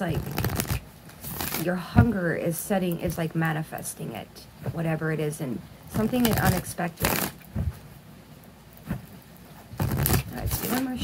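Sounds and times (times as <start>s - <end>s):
cards being shuffled by hand: 0.0s - 1.6s, 6.0s - 7.8s, 9.7s - 11.0s.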